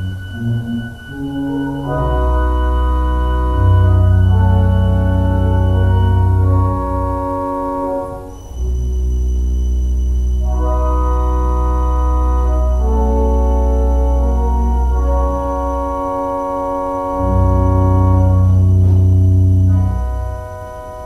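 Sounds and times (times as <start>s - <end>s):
pipe organ sustained chords: 0.0s - 21.0s.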